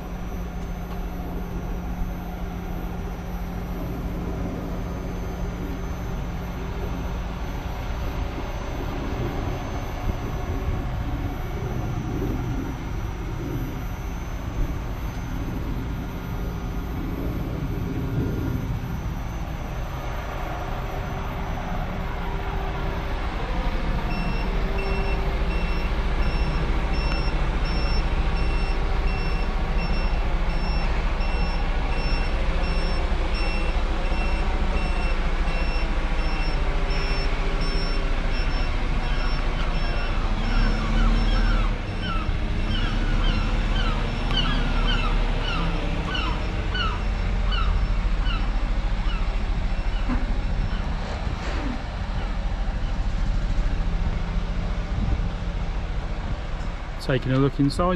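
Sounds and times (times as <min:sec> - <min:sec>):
low rumble: 0:00.0 - 0:57.7
vehicle reversing alarm beeping: 0:00.0 - 0:57.9.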